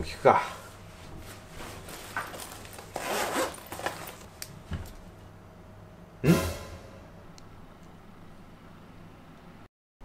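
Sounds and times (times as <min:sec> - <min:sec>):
rustling inside bag: 0:01.6 - 0:04.3
bag zipper pulled open: 0:03.0 - 0:03.9.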